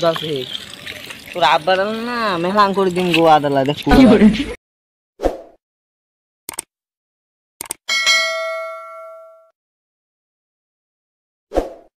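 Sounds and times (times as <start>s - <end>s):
bright notification ding: 7.9s - 9.5s.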